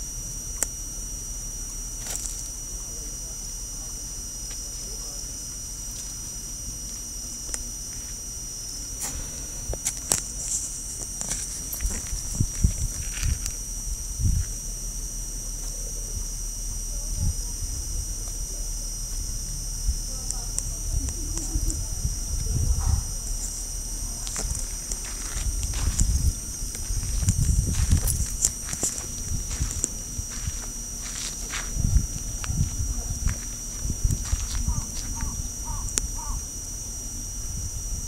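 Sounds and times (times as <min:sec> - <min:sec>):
high-pitched whine: 0:00.0 - 0:38.0.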